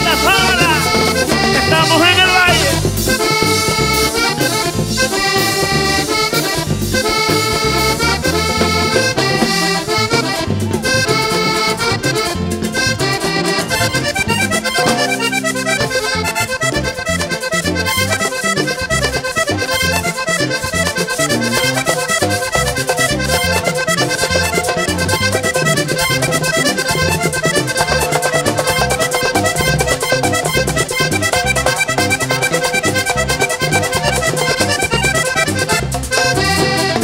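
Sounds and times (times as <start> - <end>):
steady percussion beat: 0.0 - 18.6, 21.0 - 37.0
button accordion melody: 0.0 - 37.0
electric bass: 0.0 - 37.0.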